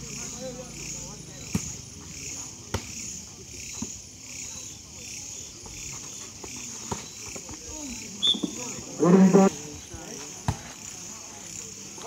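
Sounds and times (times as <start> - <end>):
crickets chirping: 0.0 - 12.0
murmur of spectators: 0.0 - 12.0.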